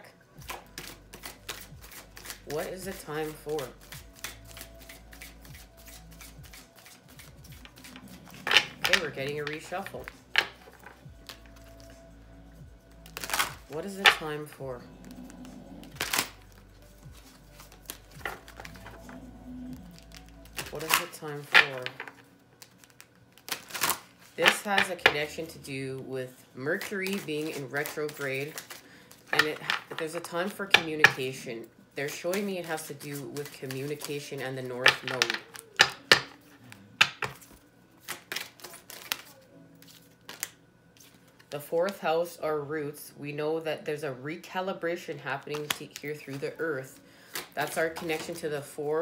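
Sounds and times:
quiet background music: 0:00.0 - 0:49.0
cards being shuffled: 0:00.4 - 0:12.2, 0:12.9 - 0:25.5, 0:26.3 - 0:31.4, 0:32.1 - 0:42.0, 0:45.4 - 0:48.8.

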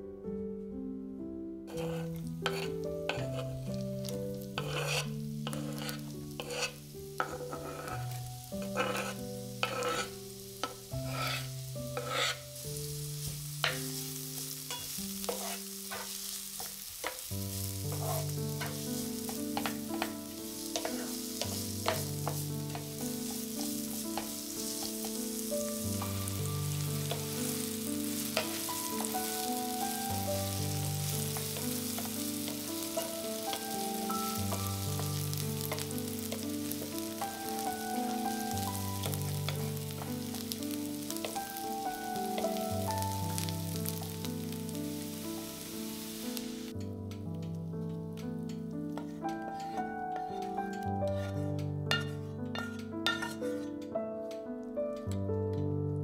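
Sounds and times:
background music: 0:00.0 - 0:56.0
spatula scraping and tapping pan: 0:01.7 - 0:12.6, 0:13.2 - 0:44.3, 0:48.2 - 0:54.4
onion sizzling in oil: 0:01.7 - 0:46.9, 0:48.2 - 0:53.8.

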